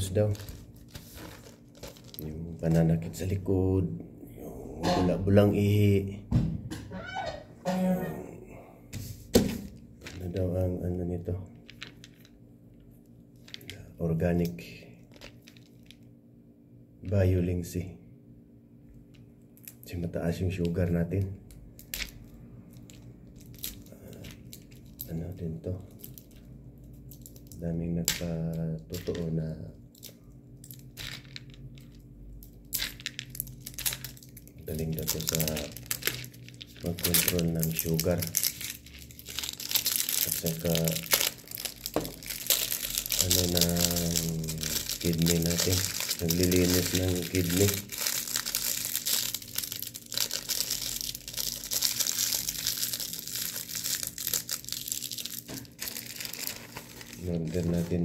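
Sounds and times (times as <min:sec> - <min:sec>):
plastic packaging crinkling: 0:00.0 - 0:03.4, 0:09.4 - 0:10.6, 0:15.0 - 0:16.0, 0:21.6 - 0:27.6, 0:28.5 - 0:58.0.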